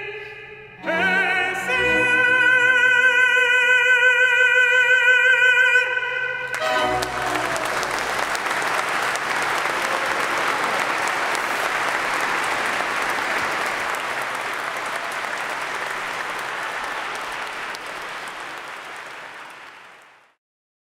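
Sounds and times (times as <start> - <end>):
audience applauding: 6.5 - 20.4.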